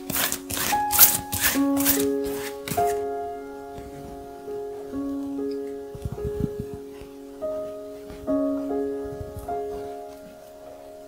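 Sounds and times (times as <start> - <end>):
paintbrush scratching canvas: 0.0 - 3.0.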